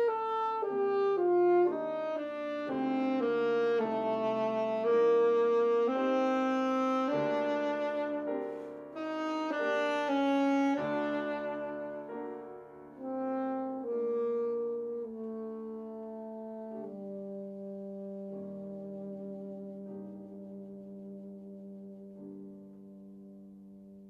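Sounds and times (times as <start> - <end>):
saxophone and piano playing: 0.0 - 24.0.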